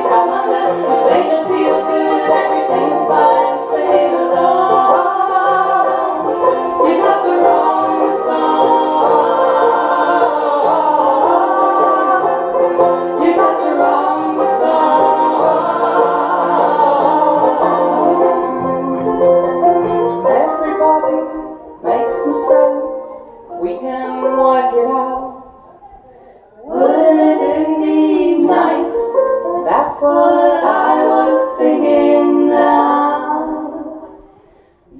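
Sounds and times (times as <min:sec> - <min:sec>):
women singing in harmony: 0:00.0 - 0:25.8, 0:26.4 - 0:34.9
strummed banjo: 0:00.0 - 0:25.9, 0:26.6 - 0:34.4
acoustic guitar: 0:00.0 - 0:34.9
mandolin: 0:00.0 - 0:34.9.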